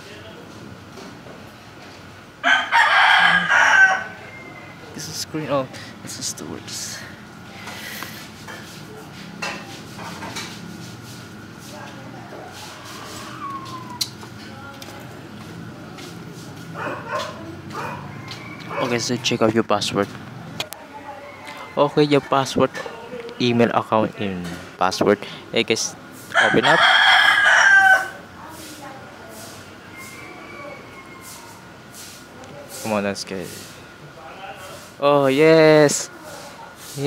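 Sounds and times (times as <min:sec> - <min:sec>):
rooster crowing: 0:02.4 - 0:05.2, 0:12.2 - 0:14.1, 0:16.8 - 0:19.4, 0:20.9 - 0:22.3, 0:26.3 - 0:28.3, 0:29.8 - 0:31.8
steady low hum: 0:03.4 - 0:20.8
dog barking: 0:16.8 - 0:19.1.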